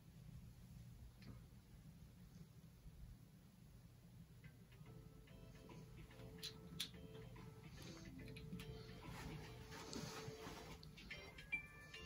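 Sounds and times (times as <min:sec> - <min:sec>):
faint quiet music: 0:00.0 - 0:12.0.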